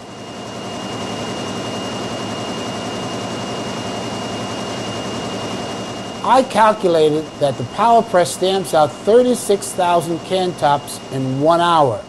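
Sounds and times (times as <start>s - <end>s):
thin high whine: 0.0s - 12.0s.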